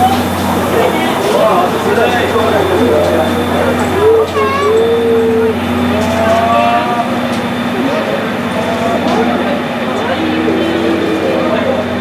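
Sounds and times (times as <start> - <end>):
onlookers' voices: 0.0 - 12.0
steam hissing: 0.0 - 12.0
steam locomotive hum: 0.0 - 12.0.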